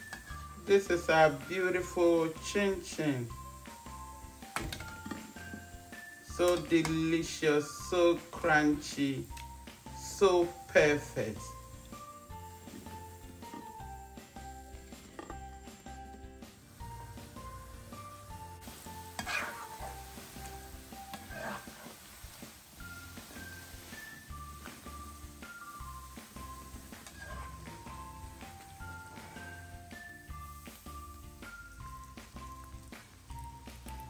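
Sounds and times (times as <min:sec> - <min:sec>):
dough frying in hot oil: 0:00.0 - 0:34.0
light melodic background music: 0:00.0 - 0:34.0.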